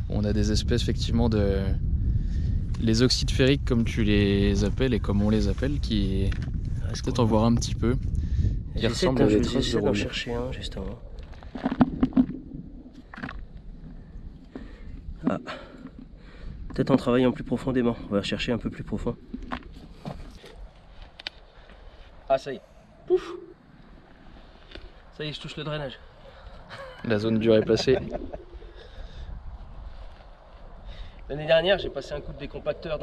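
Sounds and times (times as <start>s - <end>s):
wind rumble on microphone: 0.0s - 21.3s, 23.0s - 33.0s.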